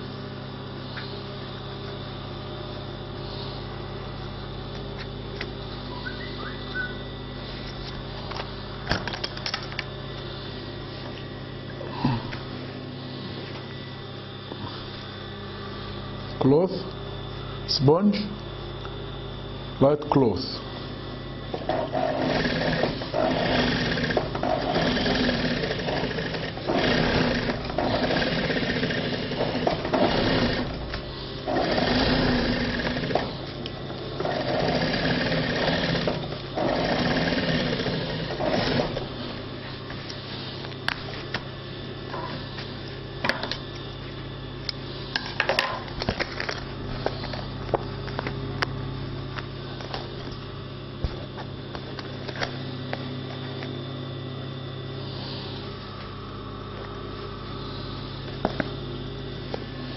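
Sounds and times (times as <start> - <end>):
steady hum: 0.0 - 59.9
sewing machine stitching: 21.6 - 30.7, 31.4 - 33.3, 34.2 - 39.0.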